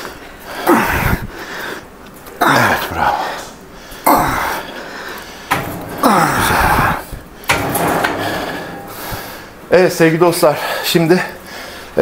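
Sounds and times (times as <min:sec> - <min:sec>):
weight stack metallic knock: 0:05.5 - 0:06.8, 0:07.5 - 0:09.4.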